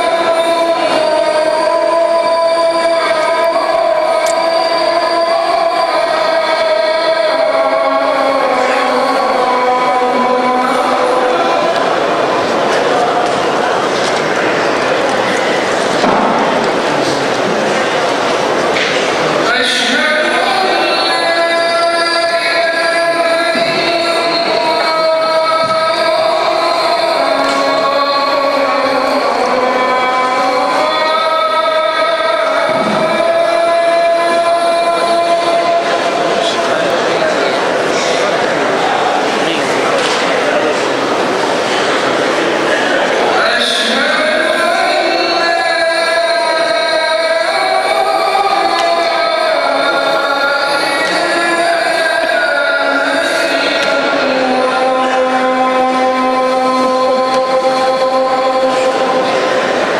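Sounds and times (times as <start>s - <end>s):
man's call to prayer over loudspeakers: 0.0s - 13.8s, 18.8s - 59.9s.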